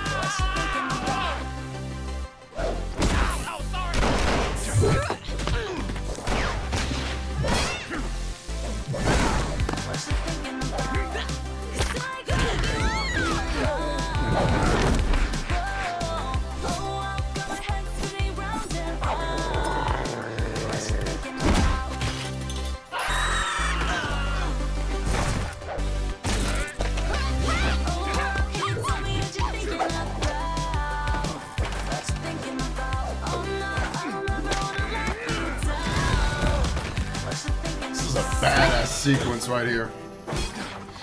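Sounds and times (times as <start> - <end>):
background music: 0.0 - 41.0.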